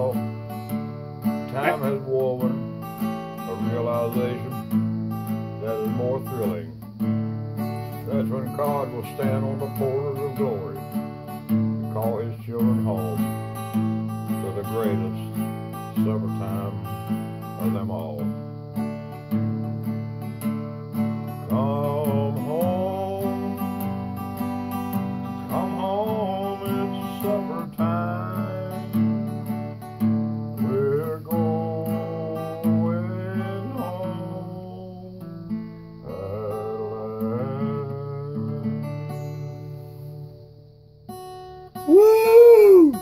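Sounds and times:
fingerpicked acoustic guitar: 0:00.0 - 0:43.0.

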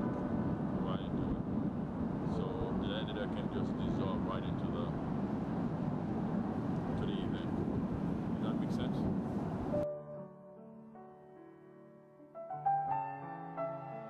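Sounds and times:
distant traffic rumble: 0:00.0 - 0:09.8.

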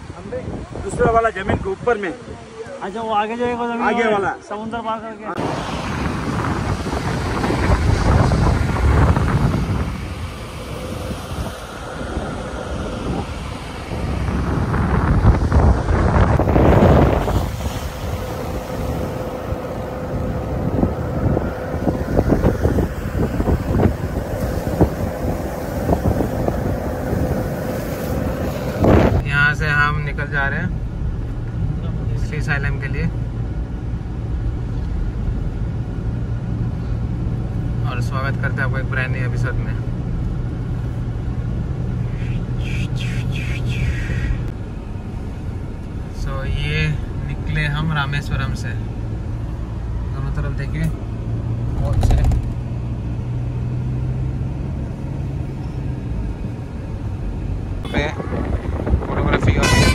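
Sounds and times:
wind on microphone: 0:05.4 - 0:29.4, 0:40.5 - 0:45.8, 0:57.4 - 0:59.9
car cabin road hum: 0:05.4 - 0:59.9.

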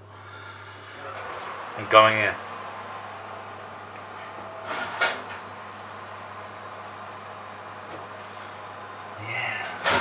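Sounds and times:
steady low hum: 0:00.0 - 0:10.0
oven door rasp: 0:00.3 - 0:06.5, 0:09.5 - 0:10.0
oven door clack: 0:03.9 - 0:05.5, 0:09.7 - 0:10.0.

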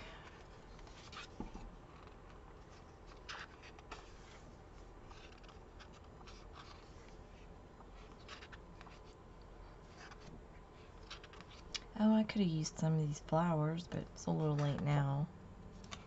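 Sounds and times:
soft paper clicks and crinkles: 0:00.0 - 0:11.9, 0:15.7 - 0:16.0
paper pages rustling: 0:00.2 - 0:11.8.

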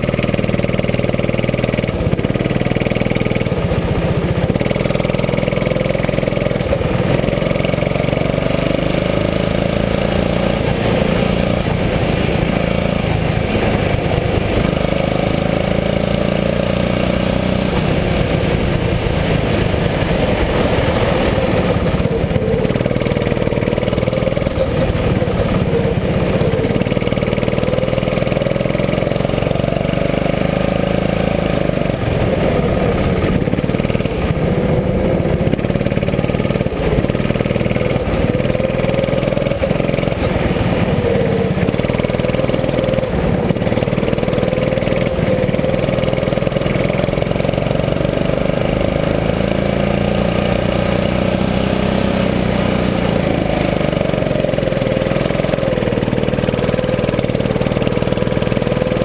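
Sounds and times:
go-kart engine revving: 0:00.0 - 0:59.0.

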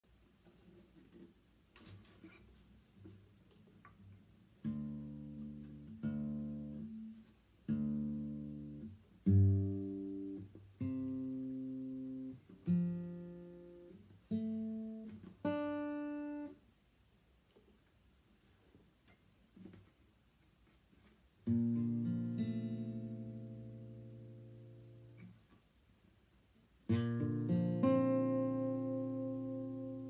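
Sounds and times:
acoustic guitar plucks: 0:04.6 - 0:16.6, 0:21.4 - 0:25.4, 0:26.9 - 0:30.0.

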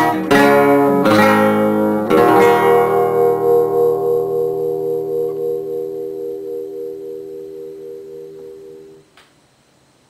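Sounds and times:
classical guitar chord ringing: 0:00.0 - 0:09.0.

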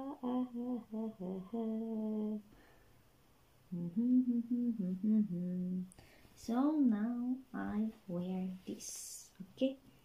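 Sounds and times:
woman humming a tune: 0:00.0 - 0:02.5, 0:03.7 - 0:05.9.

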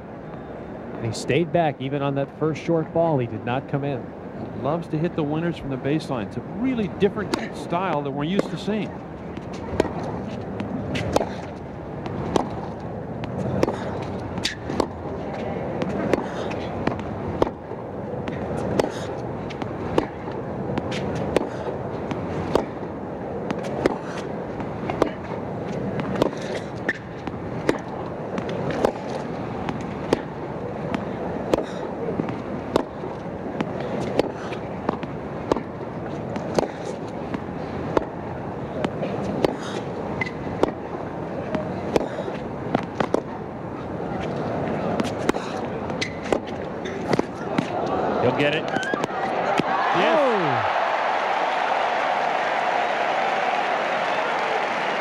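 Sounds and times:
crowd murmur: 0:00.0 - 0:26.8, 0:27.4 - 0:55.0
tennis ball hits: 0:07.2 - 0:08.7, 0:09.4 - 0:15.0, 0:15.8 - 0:38.2, 0:38.8 - 0:40.9, 0:41.5 - 0:43.3, 0:44.2 - 0:47.8, 0:48.6 - 0:50.5.

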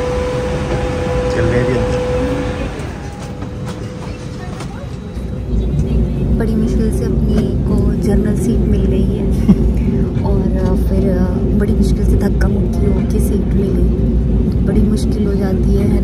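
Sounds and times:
airliner cabin hum: 0:00.0 - 0:16.0
indistinct voices: 0:01.2 - 0:16.0.

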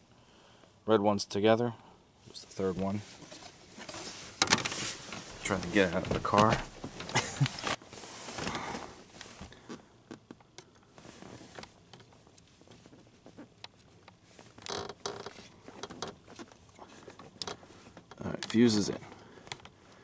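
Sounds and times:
clothing rustle: 0:02.4 - 0:09.9, 0:10.9 - 0:14.6.

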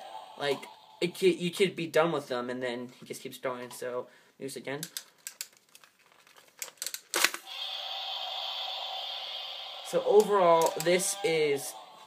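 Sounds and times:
plastic toy clicks and rustles: 0:04.8 - 0:07.5, 0:10.2 - 0:11.1
sharp toy click: 0:10.2 - 0:11.0.

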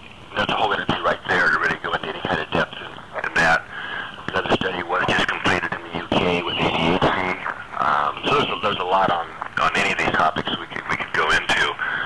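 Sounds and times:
person talking: 0:00.3 - 0:12.0.

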